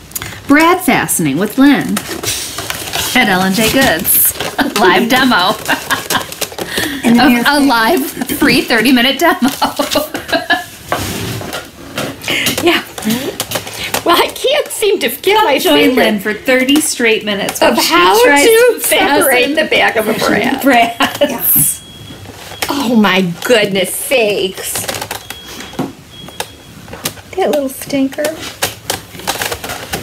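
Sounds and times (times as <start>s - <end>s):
voices talking: 3.1s - 10.7s, 12.3s - 22.0s.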